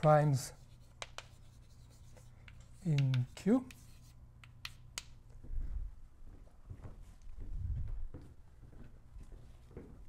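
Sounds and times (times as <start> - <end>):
chalk tapping on blackboard: 0.6 - 5.2.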